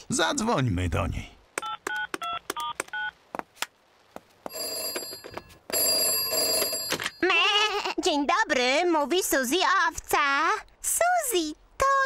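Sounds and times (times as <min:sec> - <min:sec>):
push-button phone dialling beeps: 0:01.6 - 0:03.1
telephone ringing: 0:04.5 - 0:07.3.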